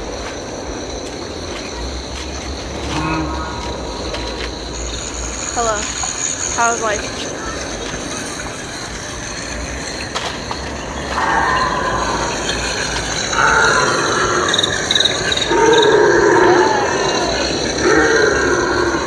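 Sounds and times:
dinosaur roars from loudspeaker: 2.8 - 4.0, 11.0 - 19.0.

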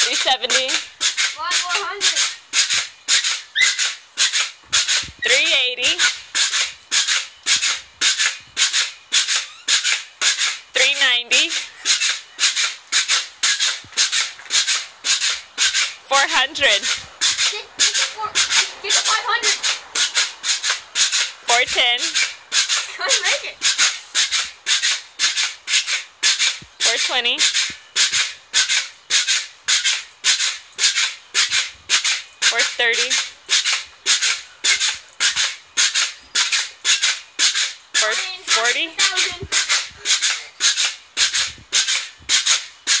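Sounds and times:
pogo stick bouncing on concrete: 0.0 - 43.0.

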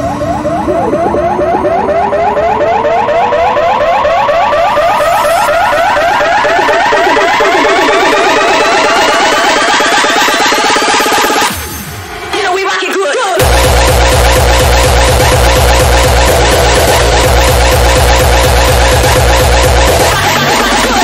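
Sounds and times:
repeating synth figure: 0.0 - 11.8, 13.4 - 21.0
rising pitch sweep: 0.0 - 12.0, 13.4 - 21.0.

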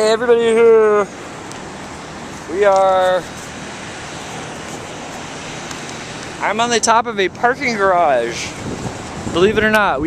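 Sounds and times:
open-air ambience rushing noise: 0.0 - 10.0.

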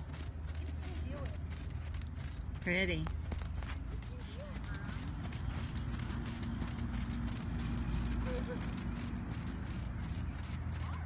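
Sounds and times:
horse hooves trotting on sand: 0.0 - 11.0.

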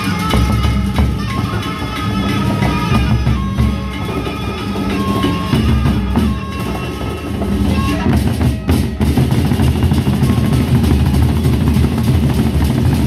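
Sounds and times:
barrel drums ensemble: 0.0 - 13.0.

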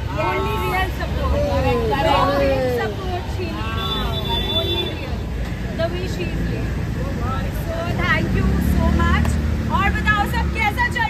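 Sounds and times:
people talking and calling out: 0.0 - 11.0.

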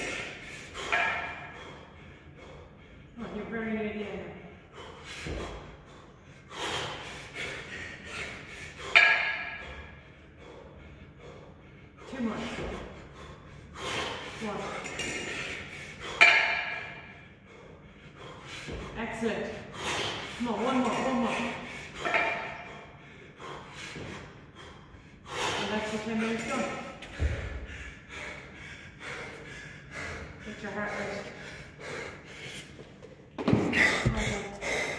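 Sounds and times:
hard breathing and exhales: 0.0 - 3.6, 4.3 - 34.9
kettlebells clanking together: 0.8 - 1.6, 8.7 - 9.9, 14.1 - 17.1, 20.4 - 22.7.

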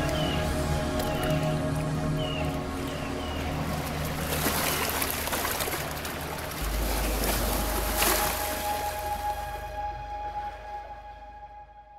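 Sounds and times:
water splashing: 0.0 - 10.4
long held music notes: 6.7 - 11.9.

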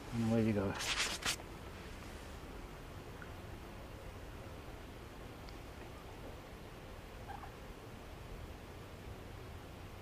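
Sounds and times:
low steady rumble: 0.0 - 10.0
faint bird call: 7.2 - 7.6.

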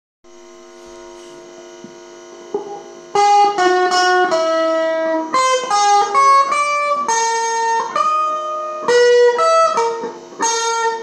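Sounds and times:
guitar amplifier hum and buzz: 0.2 - 11.0.

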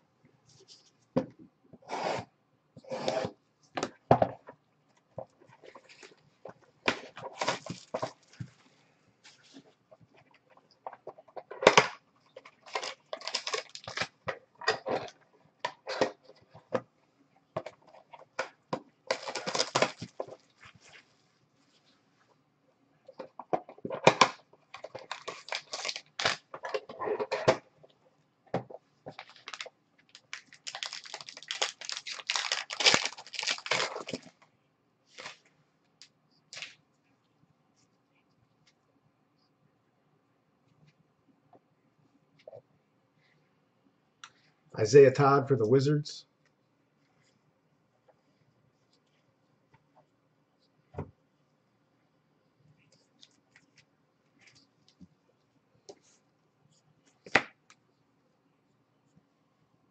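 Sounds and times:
cardboard and wrapping rustling: 5.2 - 10.0, 12.4 - 15.2, 19.0 - 22.0, 23.2 - 27.6, 28.7 - 34.4, 35.1 - 35.5.

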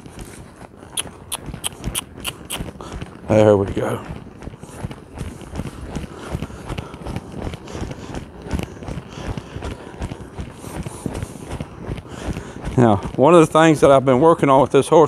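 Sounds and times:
horse hoofbeats on sand: 0.0 - 15.0.

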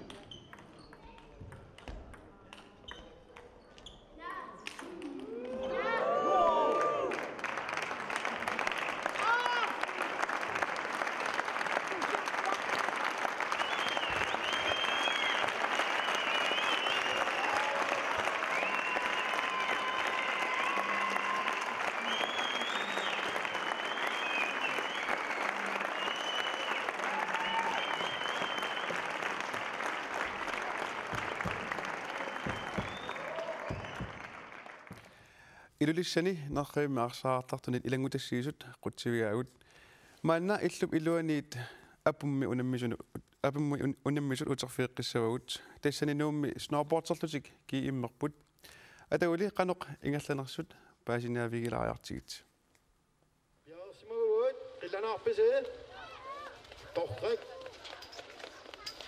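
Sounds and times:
audience applauding: 5.0 - 35.2, 55.9 - 59.0
high-pitched cheers: 5.2 - 7.4, 8.8 - 10.0, 13.6 - 29.6, 30.6 - 34.4.

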